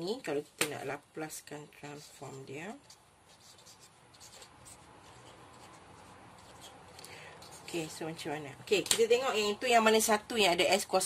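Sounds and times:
marker pen scratching on paper: 1.8 - 8.0.

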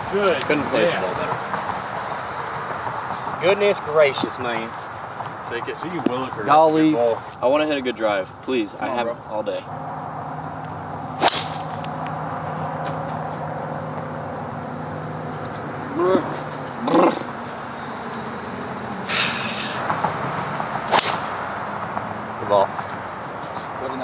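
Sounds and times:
golf driver striking ball: 11.2 - 11.9, 20.8 - 21.4.

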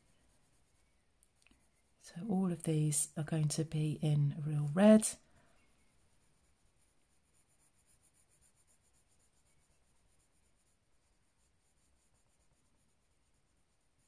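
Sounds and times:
pencil scratching on card: 0.0 - 2.5, 5.8 - 14.0.

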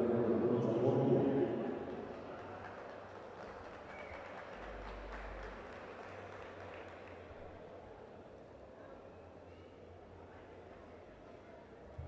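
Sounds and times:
arena crowd background noise: 0.0 - 12.0.

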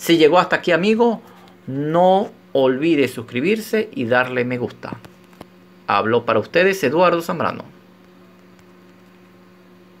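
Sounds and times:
faint electrical hum: 0.0 - 10.0.

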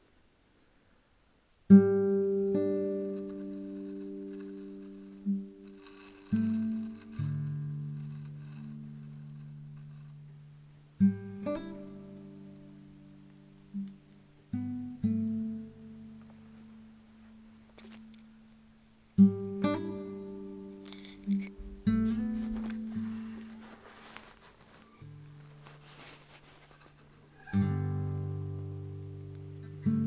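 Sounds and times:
acoustic guitar chords ringing: 1.7 - 23.4, 27.4 - 30.0.

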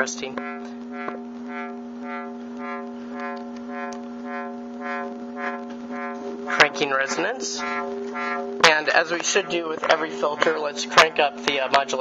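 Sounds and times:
filtered synthesizer wah tone: 0.0 - 12.0.

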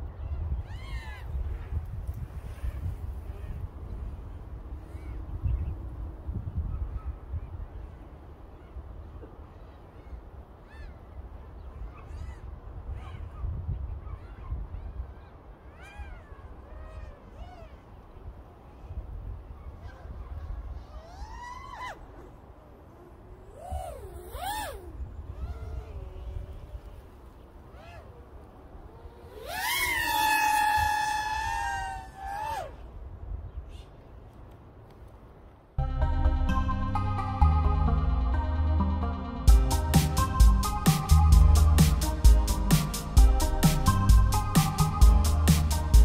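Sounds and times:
animal call rising and falling: 23.0 - 26.9, 27.7 - 32.8
quadcopter propellers whining: 29.0 - 31.4
steady low rumble: 35.8 - 46.0.

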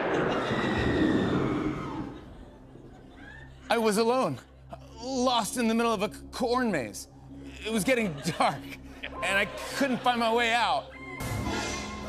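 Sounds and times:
boom sound effect tail: 0.0 - 2.3.

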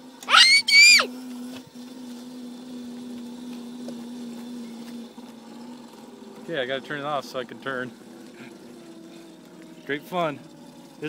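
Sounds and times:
electric scooter coasting hum: 0.0 - 11.0.

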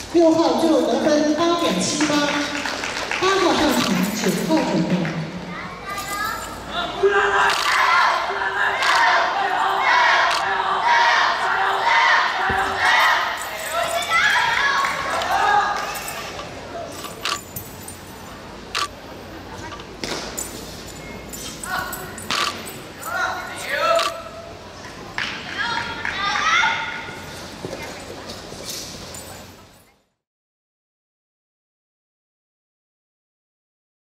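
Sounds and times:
spectators chattering in echoing hall: 0.0 - 30.0.

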